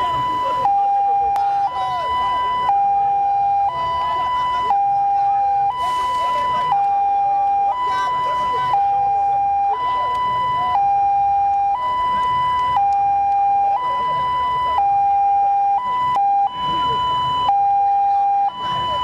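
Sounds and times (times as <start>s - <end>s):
two-tone police siren: 0.0s - 19.0s.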